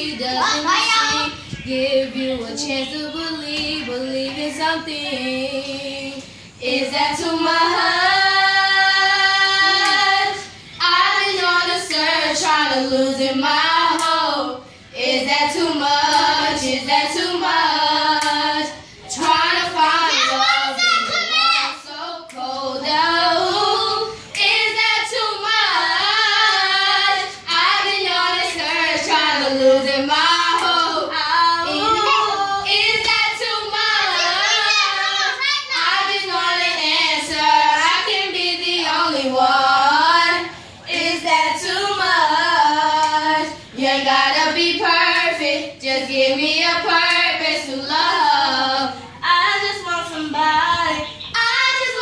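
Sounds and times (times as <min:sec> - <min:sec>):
girl singing unaccompanied: 0:00.0 - 0:52.0.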